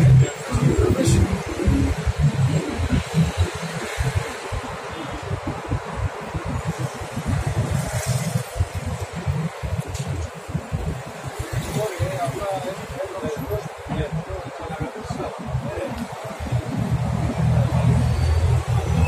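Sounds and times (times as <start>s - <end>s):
indistinct voices: 0.0s - 6.8s
choppy low rumble: 0.0s - 13.0s, 13.8s - 19.0s.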